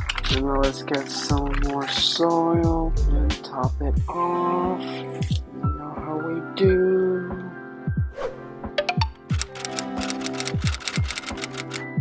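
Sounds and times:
background music with beat: 0:00.0 - 0:12.0
rapid crisp ticks: 0:09.3 - 0:11.8.

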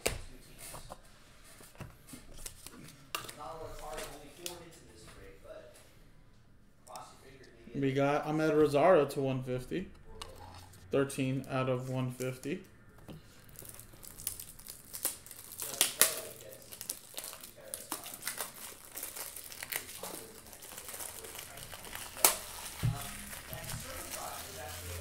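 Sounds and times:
plastic crinkling: 0:13.3 - 0:25.0.

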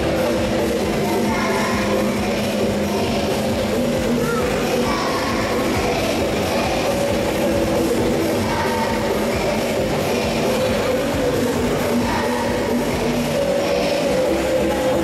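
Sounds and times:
children singing with accompaniment: 0:00.0 - 0:15.0.

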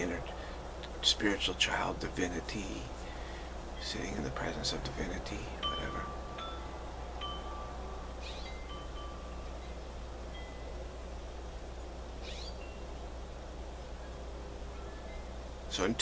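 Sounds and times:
low hum and hiss: 0:00.0 - 0:16.0
chimes ringing: 0:05.6 - 0:11.0.

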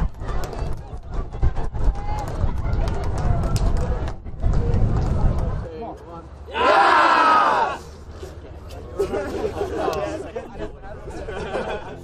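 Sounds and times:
young people chattering: 0:07.1 - 0:12.0.

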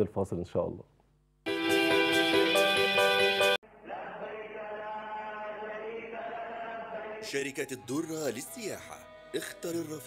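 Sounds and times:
sustained vocal chant: 0:03.7 - 0:07.9.

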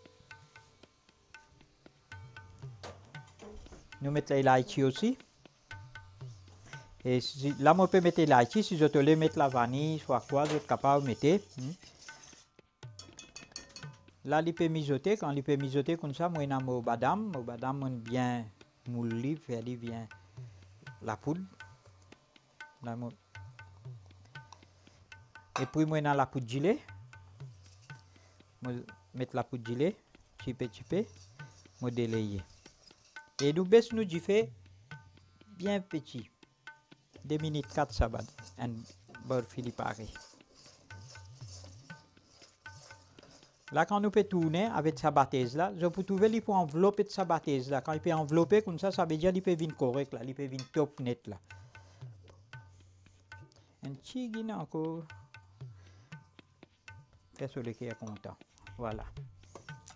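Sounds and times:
metal spoon scraping a pan: 0:02.5 - 0:04.0, 0:04.7 - 0:14.2, 0:27.3 - 0:34.0, 0:37.1 - 0:44.8, 0:59.4 - 0:59.9
metal utensils clinking on pan: 0:10.0 - 0:14.1, 0:25.5 - 0:25.9, 0:50.5 - 0:50.9
metallic clinks: 0:12.8 - 0:14.2.

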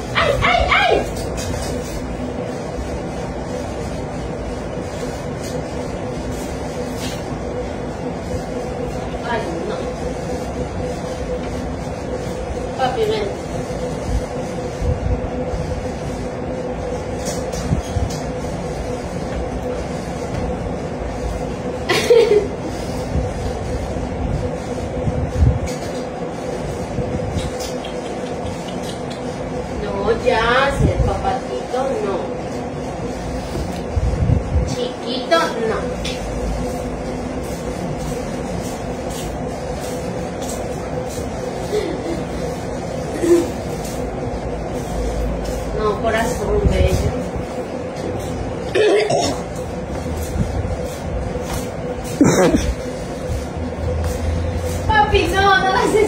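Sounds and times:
machine hum with steady tone: 0:00.0 - 0:56.0.

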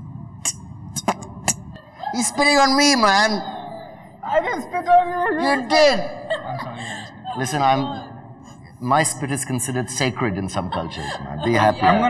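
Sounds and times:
beatbox mouth pops: 0:00.4 - 0:01.7.

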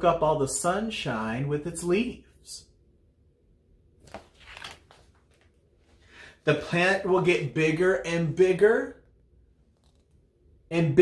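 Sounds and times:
paper page rustling and turning: 0:04.0 - 0:06.0, 0:09.7 - 0:10.2.

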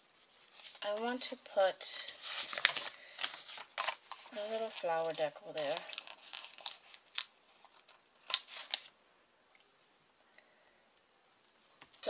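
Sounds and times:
paper sticker sheets rustling: 0:02.0 - 0:08.9
sharp paper crackle: 0:02.0 - 0:08.9.

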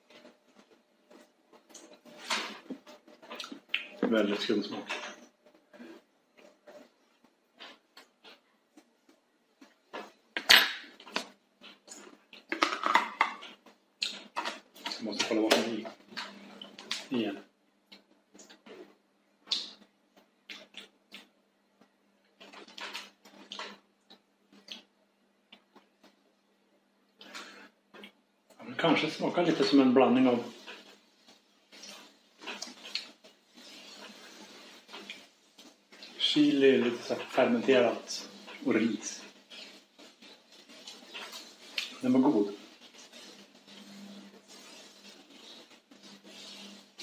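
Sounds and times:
lip smacks and mouth noises: 0:00.1 - 0:04.0, 0:06.7 - 0:12.6, 0:13.4 - 0:15.0, 0:17.9 - 0:26.2, 0:30.6 - 0:36.2, 0:39.3 - 0:42.0
lip smacks and mouth clicks: 0:03.3 - 0:04.0, 0:13.5 - 0:15.0, 0:19.4 - 0:21.3, 0:22.4 - 0:24.9, 0:31.7 - 0:33.2, 0:40.8 - 0:42.0.

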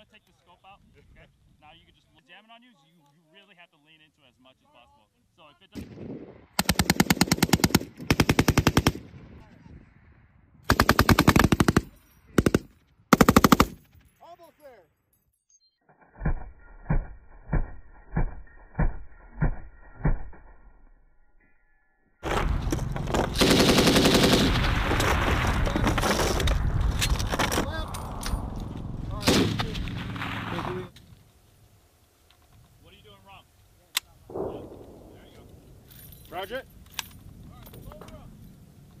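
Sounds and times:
machine guns firing automatic bursts: 0:06.6 - 0:09.0, 0:10.7 - 0:13.8, 0:22.2 - 0:26.4
single gunshots: 0:29.1 - 0:30.9, 0:34.3 - 0:35.6.

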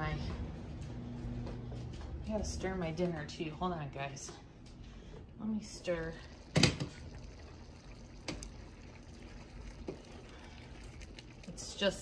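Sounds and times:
pot simmering: 0:05.5 - 0:12.0
stirring in a pot: 0:05.7 - 0:12.0.

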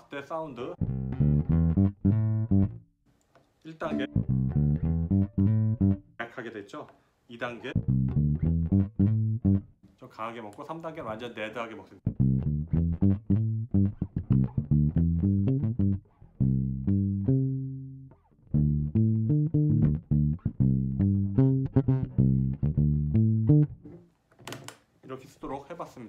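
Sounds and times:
muted bass guitar fingerstyle: 0:00.7 - 0:02.8, 0:03.8 - 0:06.2, 0:07.6 - 0:09.8, 0:12.0 - 0:24.1.

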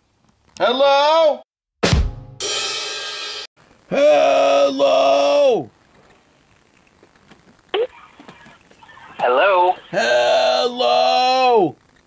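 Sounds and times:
hissing line noise: 0:03.6 - 0:12.0.

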